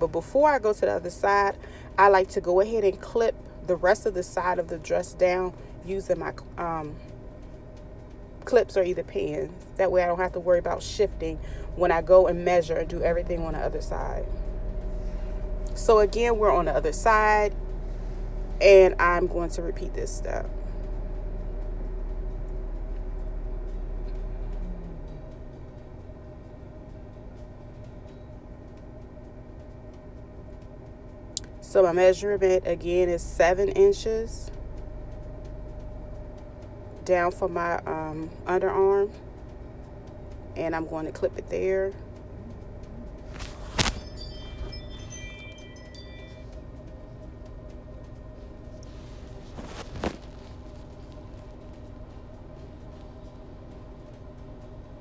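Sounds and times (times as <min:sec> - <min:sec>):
motor hum winding down: 0:00.0 - 0:55.0
fabric rustling: 0:43.3 - 0:44.2, 0:48.8 - 0:51.6
high chime-like ringing tones: 0:43.4 - 0:47.5.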